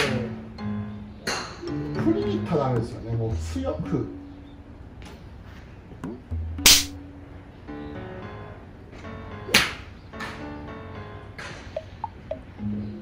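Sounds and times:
background music: 0:00.0 - 0:05.2, 0:06.0 - 0:13.0.

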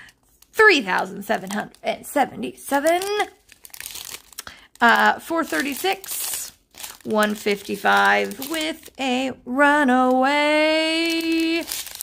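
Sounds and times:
plastic bags crinkling: 0:00.0 - 0:09.2, 0:09.9 - 0:12.0
person speaking: 0:00.5 - 0:03.5, 0:04.8 - 0:11.8.

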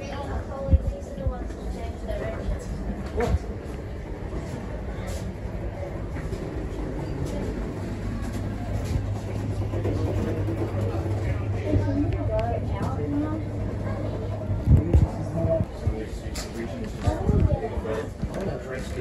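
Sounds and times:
faint voices: 0:00.0 - 0:19.0
low hum in railway carriage: 0:00.0 - 0:19.0.

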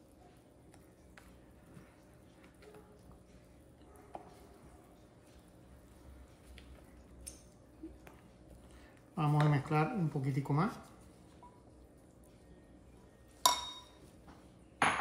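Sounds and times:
batter squishing: 0:00.0 - 0:14.3.

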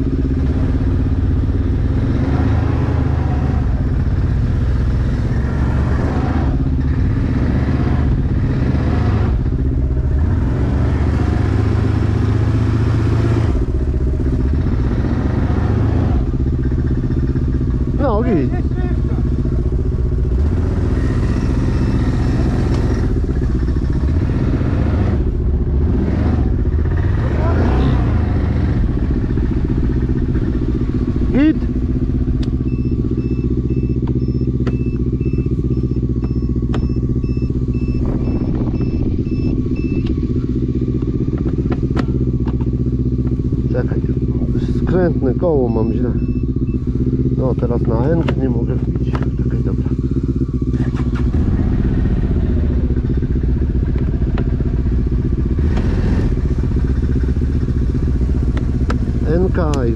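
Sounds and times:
atv engine revving under load: 0:00.0 - 0:59.9
electronic beeping: 0:32.5 - 0:40.4, 0:45.6 - 0:46.9.

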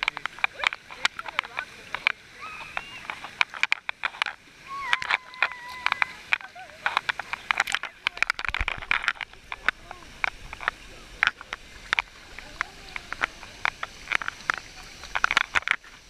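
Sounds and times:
water splashing against camera: 0:00.0 - 0:16.0.

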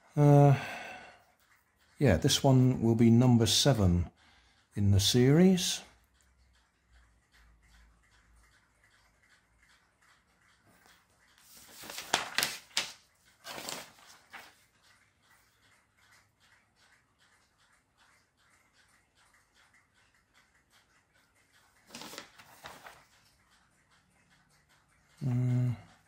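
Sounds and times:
paper rustling: 0:11.4 - 0:14.6, 0:21.9 - 0:23.1.

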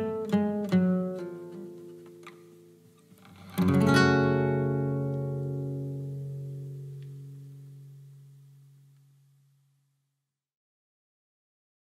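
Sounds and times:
guitar chord strummed: 0:00.0 - 0:09.6.

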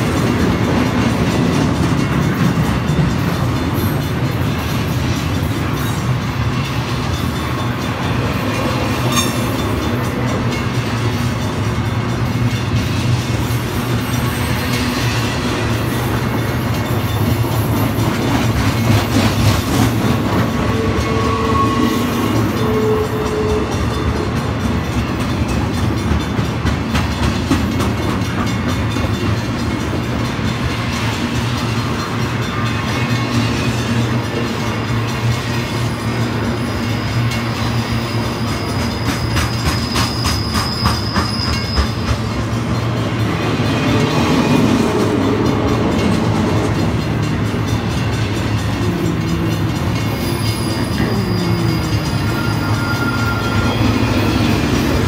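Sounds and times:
freight train rumbling past: 0:00.0 - 0:55.0.

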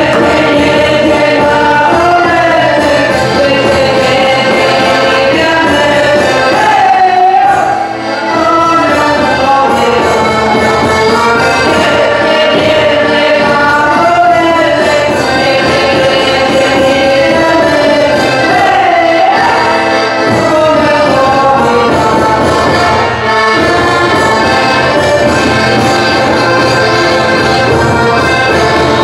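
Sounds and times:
folk band playing a dance tune: 0:00.0 - 0:29.0
voices singing together: 0:00.0 - 0:29.0.

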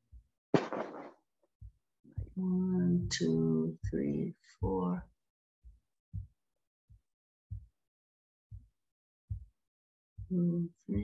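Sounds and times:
soft low thumps: 0:00.0 - 0:07.8, 0:08.5 - 0:08.7, 0:09.3 - 0:09.5, 0:10.2 - 0:11.0.

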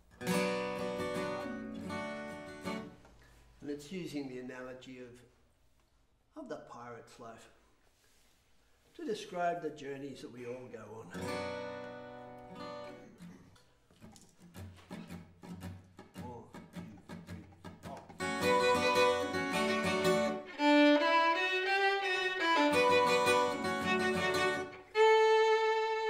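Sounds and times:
acoustic guitar picking: 0:00.1 - 0:02.9, 0:11.1 - 0:21.4, 0:22.1 - 0:24.9
violin bowing melody: 0:18.2 - 0:26.0.

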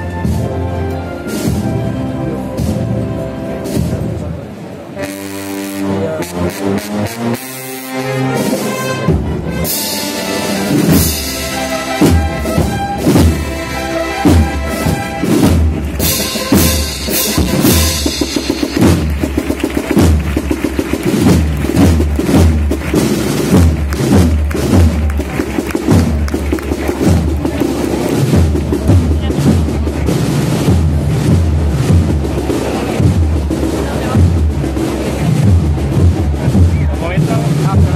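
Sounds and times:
brass and woodwind chords: 0:00.0 - 0:04.2, 0:04.8 - 0:28.2
snare and bass drums marching beat: 0:06.4 - 0:37.9.

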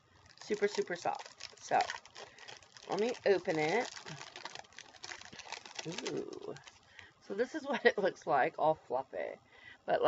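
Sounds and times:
plastic wrapper tearing and crinkling: 0:00.1 - 0:07.0.

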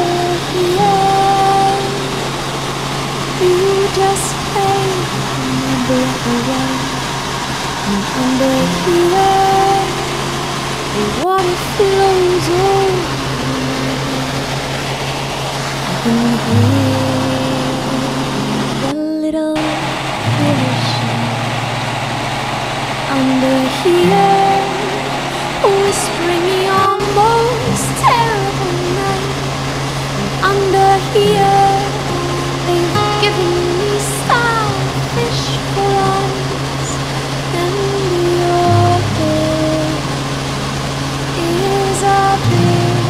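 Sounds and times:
woman singing long notes: 0:00.0 - 0:02.2, 0:03.4 - 0:07.0, 0:07.9 - 0:14.4, 0:15.9 - 0:21.3, 0:23.1 - 0:40.3, 0:41.3 - 0:43.0
helicopter engine and rotor noise: 0:00.0 - 0:18.9, 0:19.6 - 0:43.0
steady low drone: 0:19.6 - 0:43.0.

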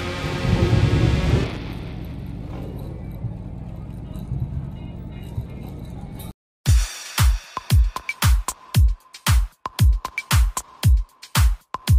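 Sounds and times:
motorcycle engines rumbling: 0:00.0 - 0:06.3.

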